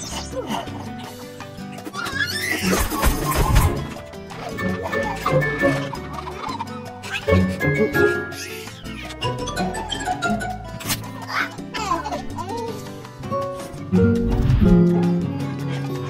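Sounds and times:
lively background music: 0.0 - 16.0.

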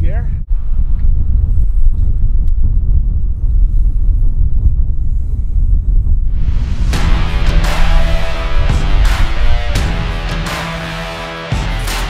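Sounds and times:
wind buffeting microphone: 0.0 - 9.8.

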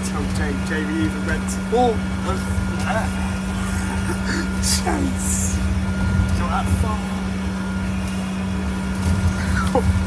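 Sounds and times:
bus engine rumble: 0.0 - 10.0.

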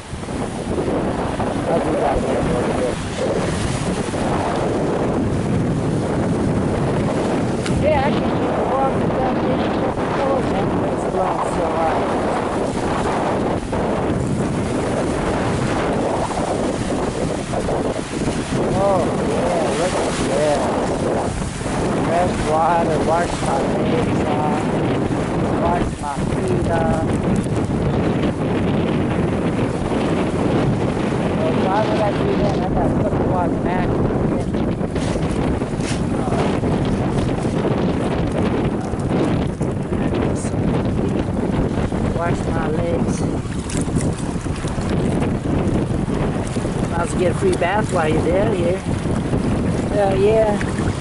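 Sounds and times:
surf breaking on pebbly beach: 0.0 - 51.0
wind buffeting microphone: 0.0 - 51.0.

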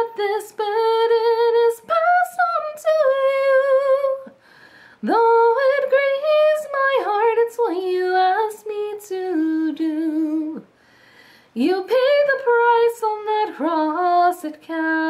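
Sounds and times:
woman singing unaccompanied: 0.0 - 4.4, 5.0 - 10.7, 11.6 - 15.0.

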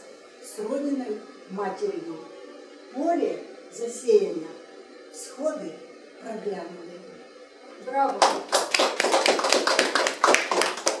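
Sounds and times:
people applauding: 8.2 - 11.0.

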